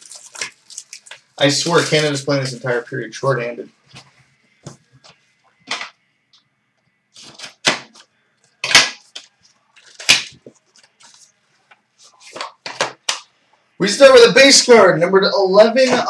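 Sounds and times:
card packaging crackling: 0.0s - 2.8s, 7.2s - 11.4s.

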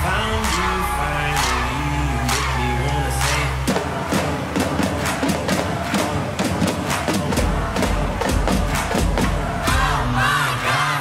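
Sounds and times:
marching snare and bass drums: 3.6s - 10.4s.

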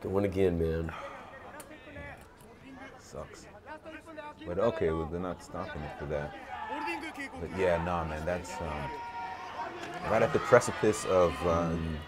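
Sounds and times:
arena background noise: 0.0s - 12.0s
faint voices: 0.8s - 12.0s.

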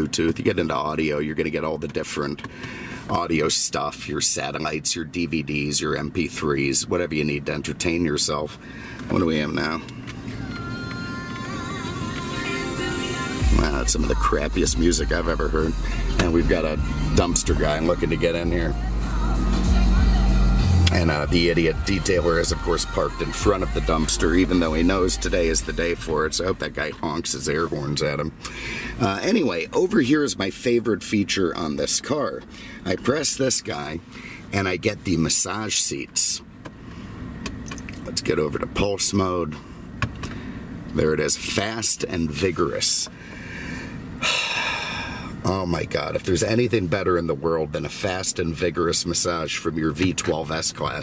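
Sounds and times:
car radio music: 8.9s - 36.7s
low hum: 9.8s - 29.0s
man exhaling with a sigh: 43.2s - 45.4s.

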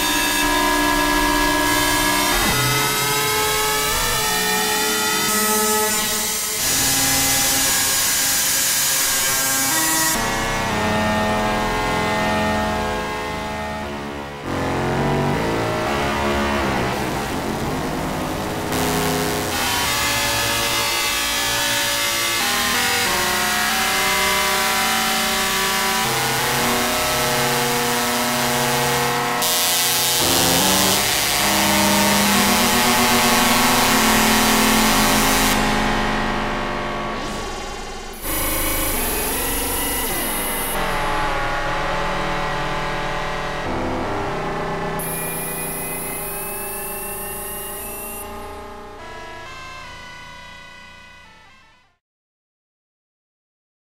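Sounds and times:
harsh synthesizer fm tones: 29.9s - 42.4s, 45.0s - 50.1s.

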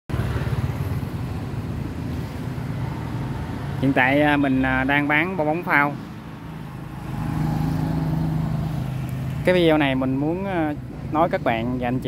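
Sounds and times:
man speaking: 3.8s - 6.0s, 9.4s - 12.0s.

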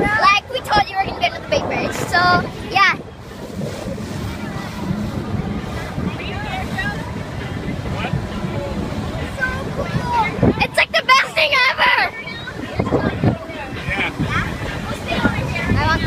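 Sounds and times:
faint voices: 0.0s - 16.0s
water rushing: 0.0s - 16.0s
wind on microphone: 0.0s - 16.0s.

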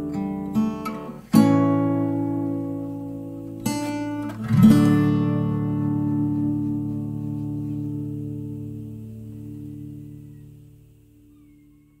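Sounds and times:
acoustic guitar chord ringing: 0.0s - 6.6s, 7.2s - 11.3s.

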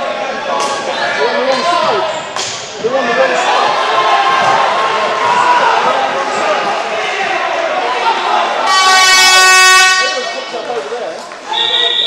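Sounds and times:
court noise: 0.0s - 12.0s.

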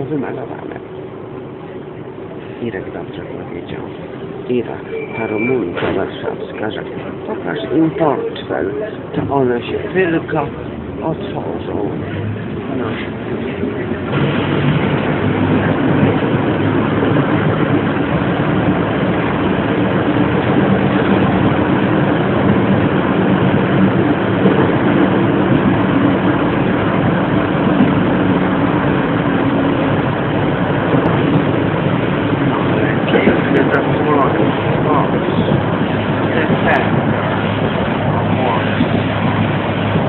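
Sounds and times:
bus engine hum: 0.0s - 40.0s
road rumble: 0.0s - 40.0s.

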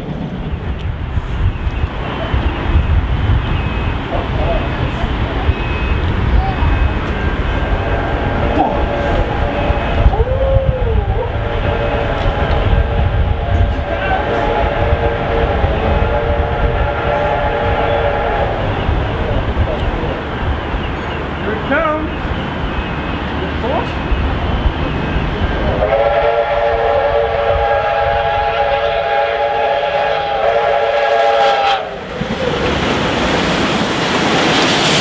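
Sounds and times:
steam locomotives rumbling: 0.0s - 35.0s
multi-note steam whistle: 11.3s - 18.8s, 25.7s - 32.0s.

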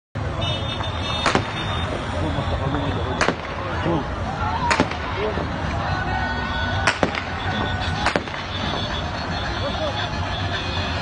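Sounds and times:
street vehicles: 0.1s - 11.0s
crowd voices: 0.2s - 11.0s
sharp bangs: 0.8s - 2.1s, 3.1s - 3.8s, 4.6s - 5.3s, 6.7s - 9.0s.

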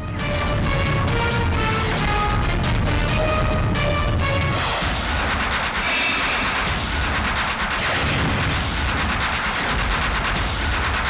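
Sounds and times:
dramatic music with heavy drums: 0.0s - 11.0s.

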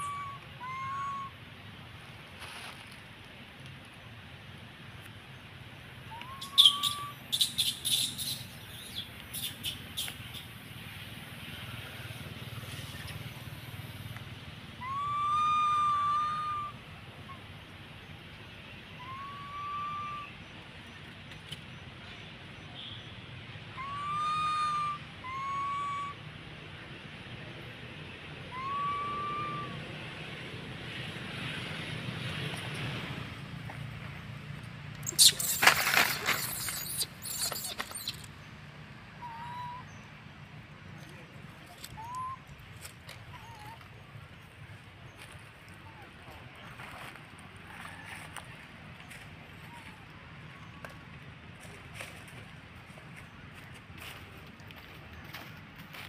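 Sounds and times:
baby macaque coo calls: 0.0s - 1.3s, 6.1s - 10.5s, 14.8s - 16.8s, 28.5s - 29.8s, 35.0s - 38.3s, 39.2s - 39.9s, 41.8s - 42.4s
birds chirping: 6.1s - 11.0s, 35.0s - 38.6s.

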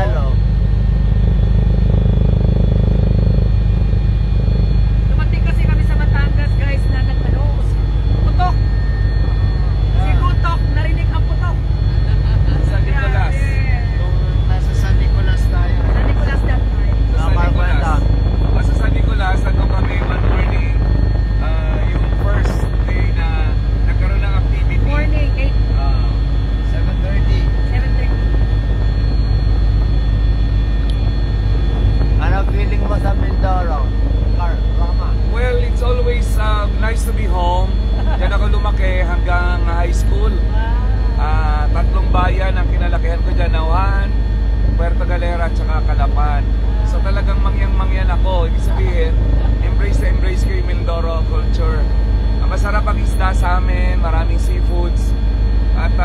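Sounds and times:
helicopter engine and rotor drone: 0.0s - 56.0s.

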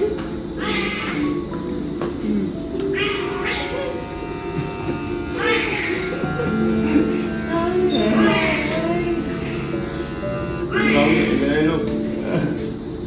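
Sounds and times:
soft background music: 0.0s - 13.0s
newborn baby crying: 0.6s - 1.4s, 5.3s - 11.6s.

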